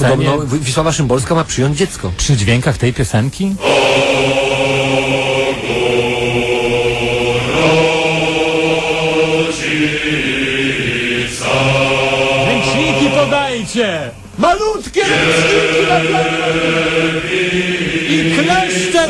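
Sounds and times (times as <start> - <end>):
voices singing chant-like melody: 3.6 - 19.0
wavering voice sliding in pitch: 15.1 - 17.0.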